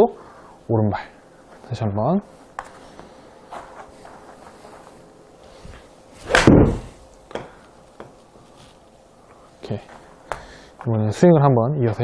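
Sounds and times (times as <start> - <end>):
golf iron striking ball: 6.2 - 7.0.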